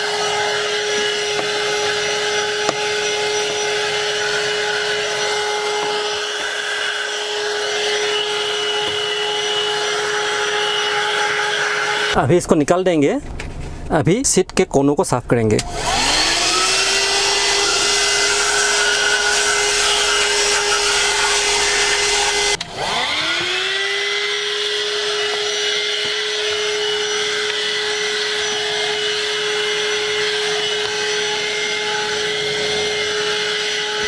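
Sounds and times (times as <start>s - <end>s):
vacuum cleaner motor whine: 0.0s - 12.2s, 15.6s - 34.0s.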